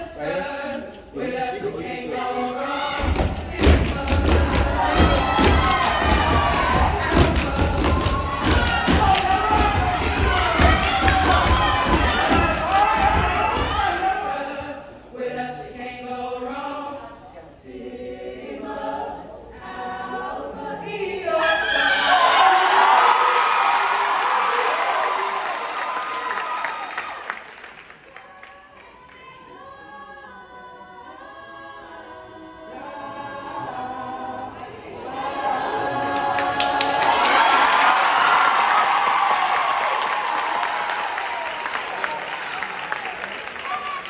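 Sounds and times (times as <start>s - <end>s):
women singing a cappella: 0.0s - 22.4s, 28.6s - 37.2s
audience cheering: 4.8s - 14.0s, 21.7s - 28.6s, 36.6s - 44.0s.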